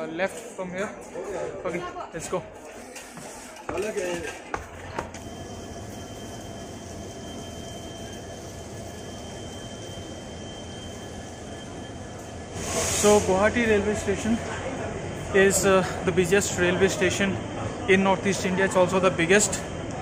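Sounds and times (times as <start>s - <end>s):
train low hum: 4.6s - 16.2s
thin high whine: 5.2s - 13.6s
rush of hiss: 12.5s - 13.4s.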